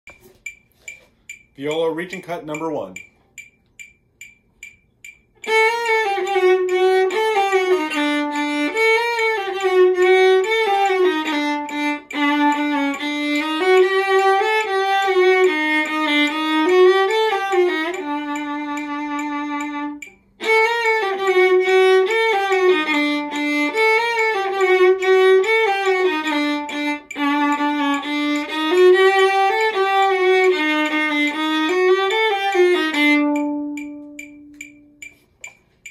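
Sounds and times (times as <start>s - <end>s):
solo viola bowed: 5.4s - 34.6s.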